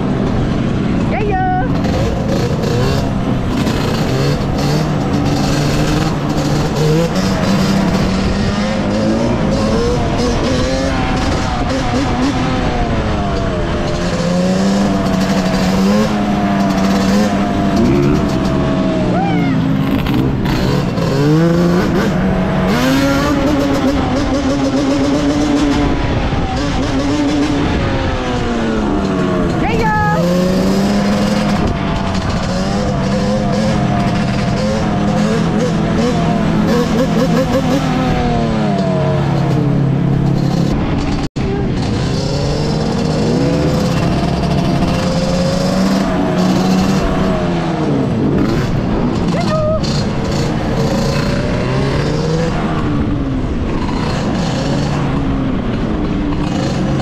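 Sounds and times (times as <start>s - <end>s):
two-stroke engine revving: 0.0s - 57.0s.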